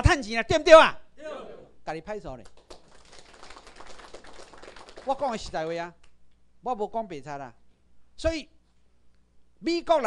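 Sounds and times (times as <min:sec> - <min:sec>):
audience clicks and rustles: 0:02.4 - 0:05.2.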